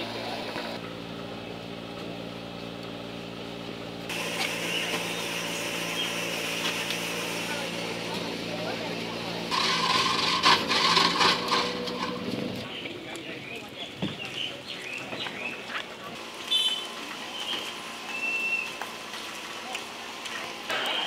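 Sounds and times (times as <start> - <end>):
crowd chatter: 6.7 - 21.0.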